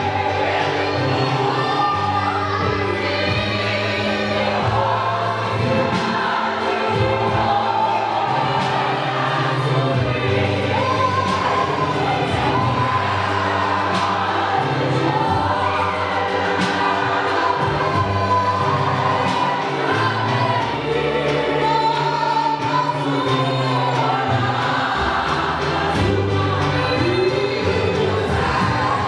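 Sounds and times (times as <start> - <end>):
congregation singing in chorus: 0.0 - 29.0
woman singing into microphone: 0.0 - 29.0.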